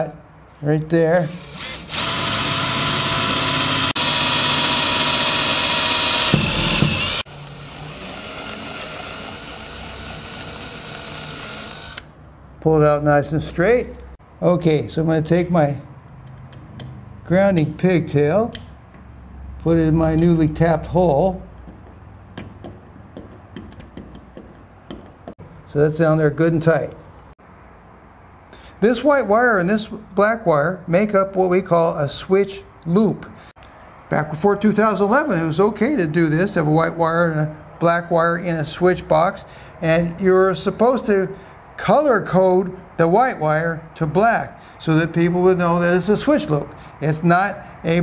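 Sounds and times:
cordless drill drilling steel: 0:01.2 - 0:12.1.

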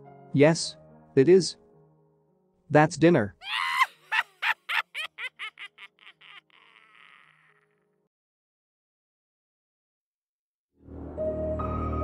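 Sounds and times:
man laughing sinisterly: 0:03.4 - 0:07.9.

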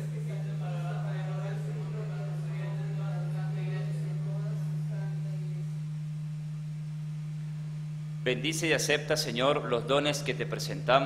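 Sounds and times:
low-pitched hum: 0:00.0 - 0:11.0.

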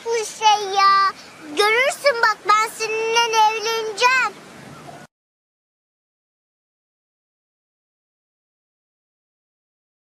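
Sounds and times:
high-pitched voice singing: 0:00.0 - 0:04.4.

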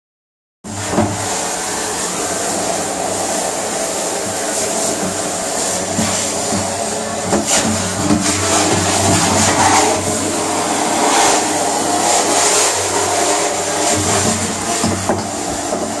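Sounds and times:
hissing water: 0:07.4 - 0:16.0
machine motor humming: 0:08.0 - 0:16.0.

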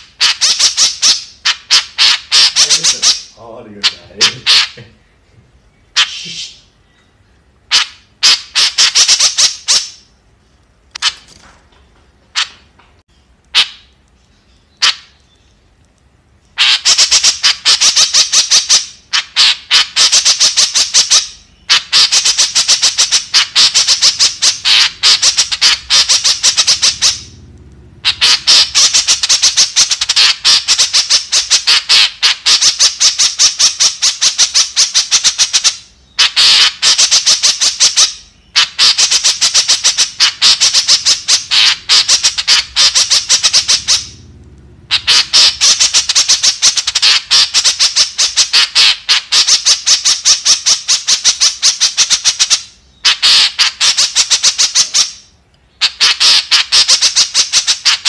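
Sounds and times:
bird calling high-pitched notes: 0:16.6 - 0:44.3.

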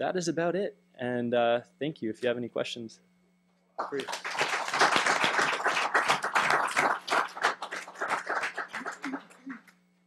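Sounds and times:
audience applauding: 0:03.8 - 0:09.6.

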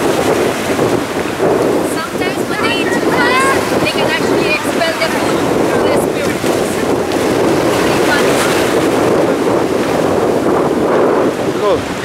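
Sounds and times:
small waves washing onto beach: 0:00.0 - 0:12.0
wind: 0:00.0 - 0:12.0
wind buffeting microphone: 0:00.0 - 0:12.0
faint voices: 0:01.8 - 0:08.8.

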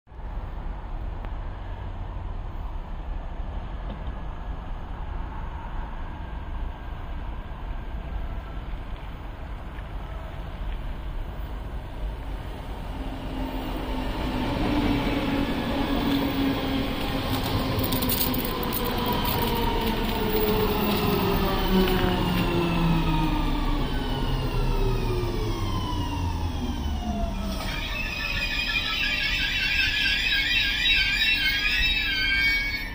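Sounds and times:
train low rumble: 0:00.1 - 0:32.9
train whine falling in pitch: 0:18.5 - 0:32.9.

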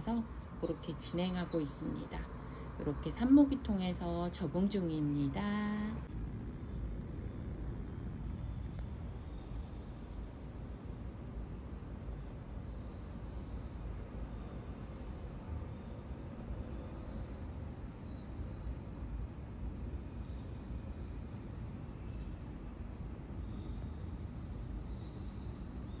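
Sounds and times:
low rumbling background noise: 0:00.0 - 0:26.0.

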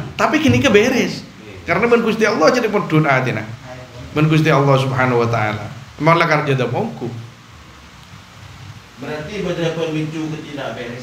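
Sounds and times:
man speaking: 0:00.0 - 0:07.3, 0:09.0 - 0:11.0
room and microphone hiss and hum: 0:00.0 - 0:11.0.

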